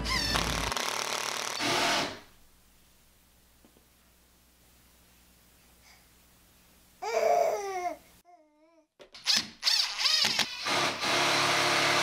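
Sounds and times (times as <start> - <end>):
power drill driving a screw: 0.1 - 2.2, 9.2 - 12.0.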